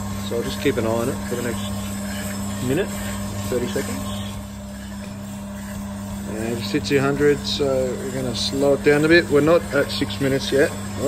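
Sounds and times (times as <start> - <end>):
coffee roaster humming: 0.0 - 11.0.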